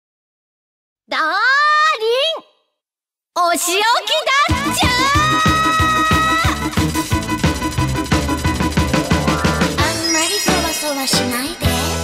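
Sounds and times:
woman exclaiming: 1.1 - 2.5, 3.6 - 6.8.

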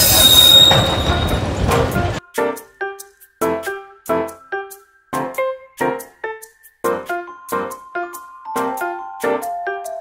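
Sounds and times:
high-pitched wheel squeal: 0.0 - 1.6
rail vehicle engine and wheels: 0.0 - 2.2.

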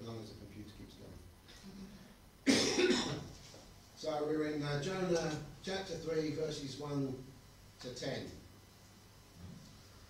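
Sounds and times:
person coughing: 2.5 - 3.3.

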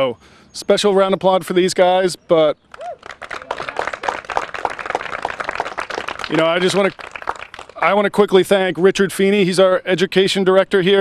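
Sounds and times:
audience applauding: 2.7 - 7.9.

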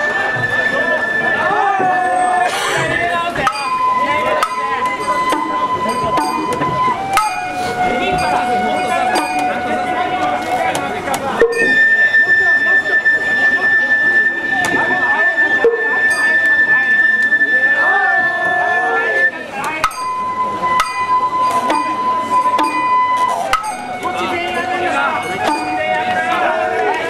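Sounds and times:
bamboo flute holding notes: 0.0 - 27.0
voices: 0.0 - 27.0.

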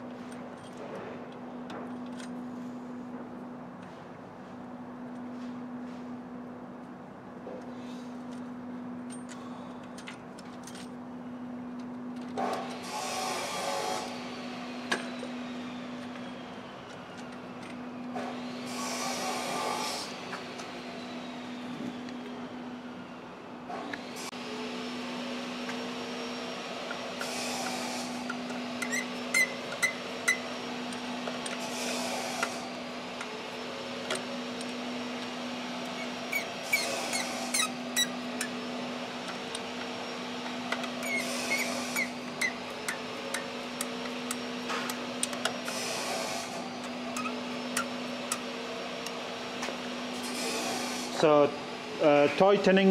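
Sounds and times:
scraping bursts: 35.8 - 48.5.

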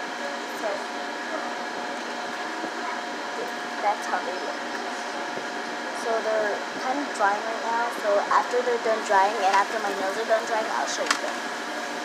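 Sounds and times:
fan whirring: 0.0 - 12.0.

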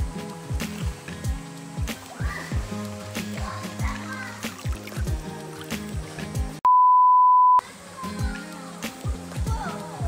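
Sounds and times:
background music with beat: 0.0 - 6.6, 7.6 - 10.0
high electronic bleep: 6.7 - 7.6.

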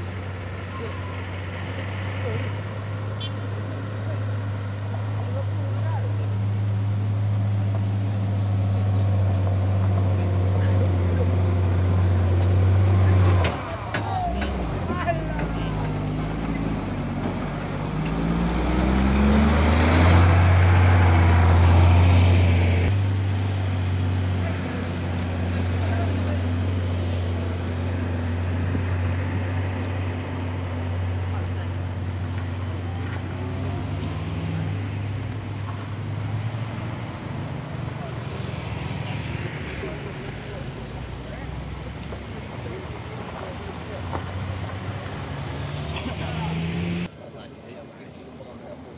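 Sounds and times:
motorcycle engine: 0.0 - 47.1
bus engine labouring: 0.0 - 48.9
car engines: 0.0 - 48.9.

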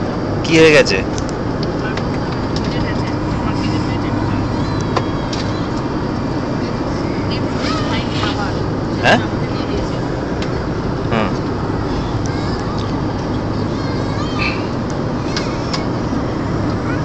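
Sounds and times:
airliner cabin drone: 0.0 - 17.0
faint voices: 1.7 - 17.0.

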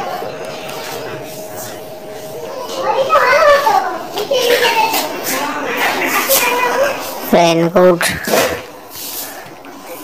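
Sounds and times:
child talking: 2.4 - 8.5.

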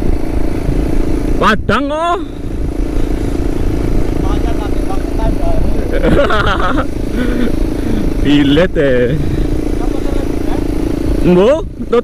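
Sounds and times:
motorcycle engines cruising: 0.0 - 12.0
person speaking: 4.2 - 6.0.

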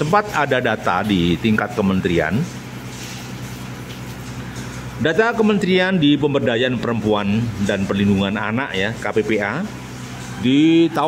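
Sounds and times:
constant hiss: 0.0 - 11.0.

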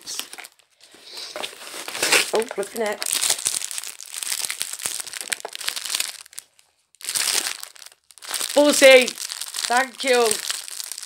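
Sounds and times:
packaging crackling and rustling: 0.1 - 11.0.

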